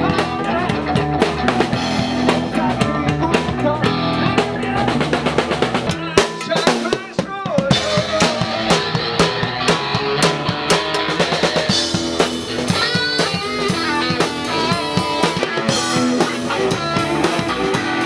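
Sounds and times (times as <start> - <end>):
live rock band playing: 0.0 - 18.0
drum hits: 1.0 - 18.0.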